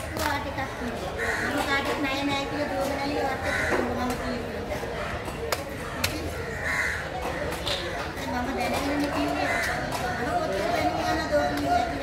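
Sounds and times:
crow cawing: 1.2 - 1.7, 3.4 - 4.0, 5.8 - 7.5, 9.4 - 10.3.

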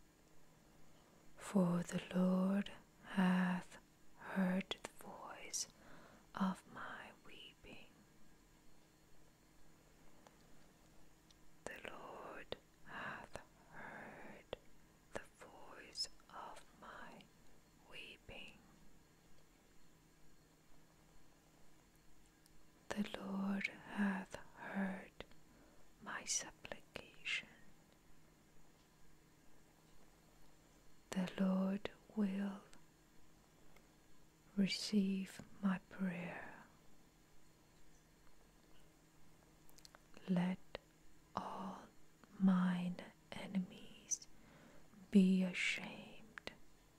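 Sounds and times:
person speaking softly: 1.4 - 5.7, 6.3 - 8.0, 11.6 - 18.7, 22.9 - 25.2, 26.0 - 27.7, 31.1 - 32.8, 34.5 - 36.8, 41.4 - 44.3, 45.0 - 46.6
person whispering: 1.4 - 5.7, 6.4 - 8.0, 11.7 - 17.2, 17.8 - 18.6, 22.9 - 25.2, 26.1 - 27.7, 34.6 - 36.7, 41.4 - 44.3, 45.0 - 46.6.

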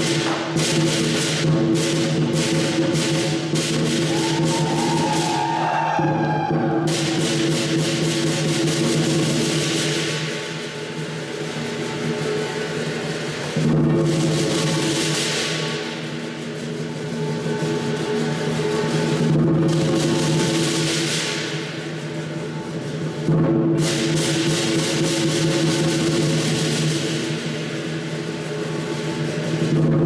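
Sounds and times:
cymbals clashing: 0.0 - 30.0
large drum beating: 0.0 - 30.0.

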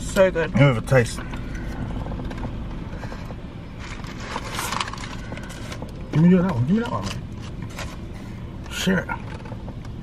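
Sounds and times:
low car interior hum: 0.0 - 10.0
crisp crackling: 3.8 - 5.8.

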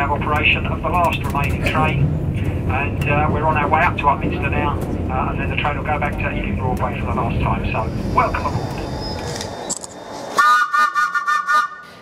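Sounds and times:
train horn blast: 10.4 - 12.0.

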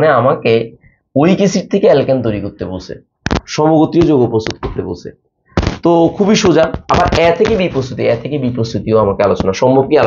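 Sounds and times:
man lecturing: 0.0 - 10.0.

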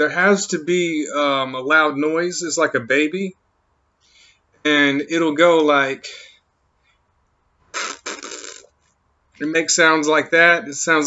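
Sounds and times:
man making breathy hissing sounds: 7.7 - 8.7.

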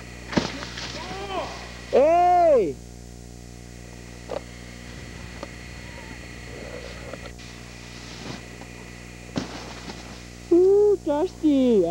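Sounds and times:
steady low hum: 0.0 - 11.9.

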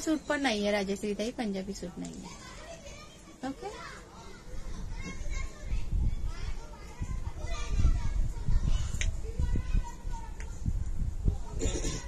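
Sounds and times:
faint voices including children: 0.0 - 12.0.

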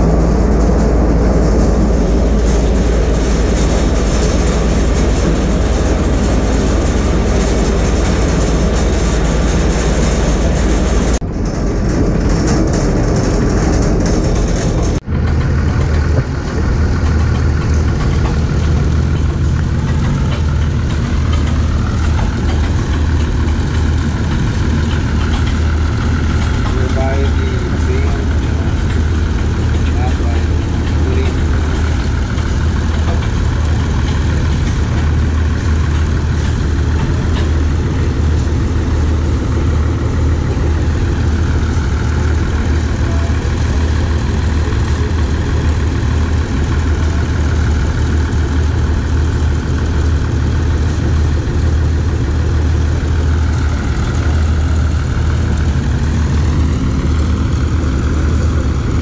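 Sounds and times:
large engine idling: 0.0 - 59.0.

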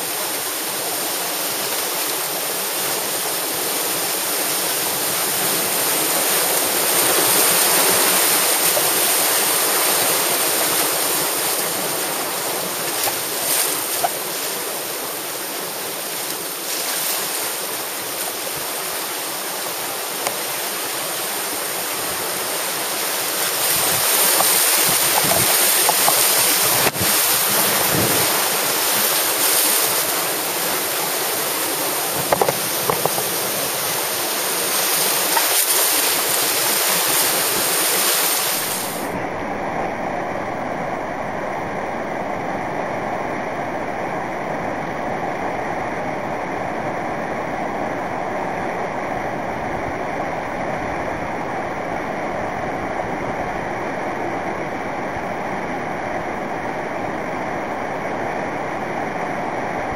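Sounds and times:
whitewater rushing: 0.0 - 59.9.

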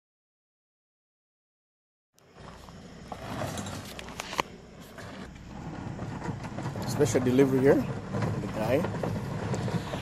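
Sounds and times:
low steady rumble: 2.2 - 10.0
pallet jack wheels crunching gravel: 2.2 - 10.0.

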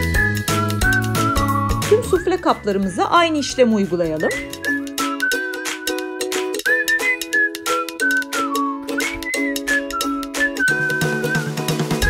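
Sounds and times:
whistled melody: 0.0 - 2.8, 3.9 - 12.0
background music with steady beat: 0.0 - 12.0.

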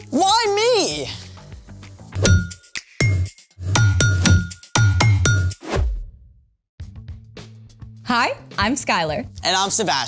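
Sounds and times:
sharp percussive hits: 2.2 - 6.0.

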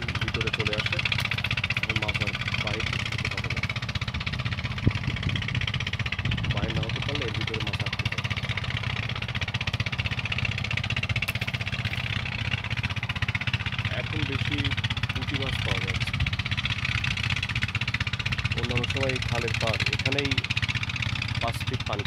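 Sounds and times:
small engine running: 0.0 - 22.0.

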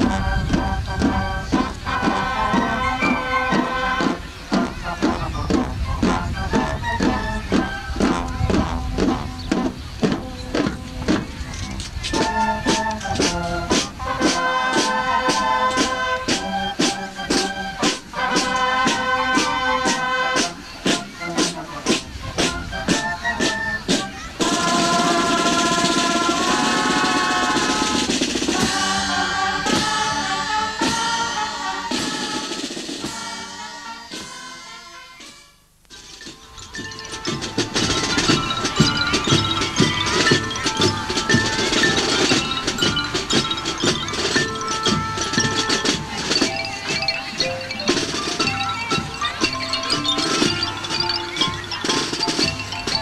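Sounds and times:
drums beating march rhythm: 0.0 - 53.0
marching band playing: 0.0 - 53.0
wind instruments melody: 0.0 - 53.0.

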